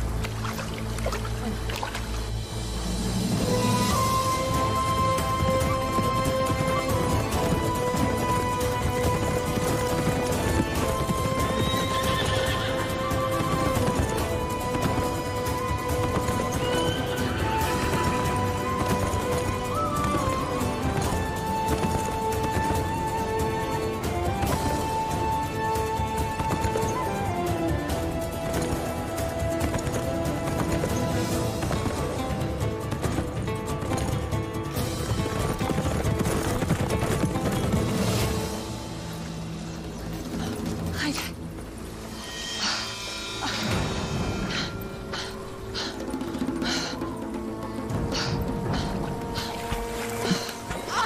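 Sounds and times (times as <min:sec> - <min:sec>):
dramatic orchestral music: 0:00.0 - 0:51.0
horses galloping: 0:02.8 - 0:42.2, 0:43.7 - 0:51.0
horse whinnying: 0:10.8 - 0:14.9.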